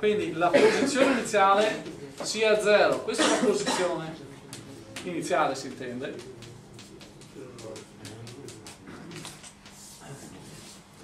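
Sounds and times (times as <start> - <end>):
chalk tapping and scratching: 4.5 - 11.0
chalk scraping strokes: 8.5 - 11.0.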